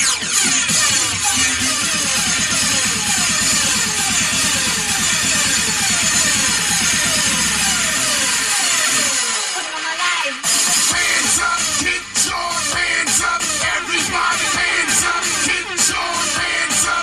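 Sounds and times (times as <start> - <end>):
electronic dance music: 0.0 - 17.0.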